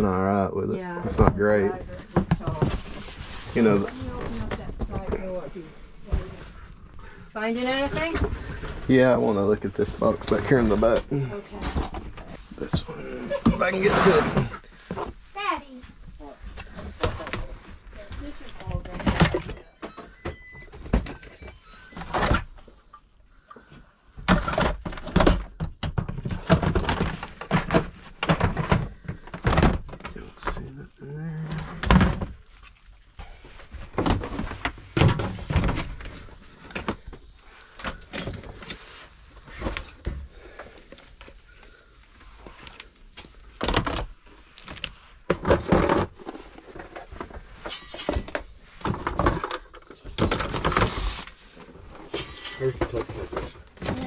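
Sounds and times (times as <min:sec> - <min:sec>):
plastic totes and toys clattering: 0:16.5 - 0:22.4, 0:24.2 - 0:30.7, 0:33.4 - 0:38.8, 0:43.5 - 0:54.0.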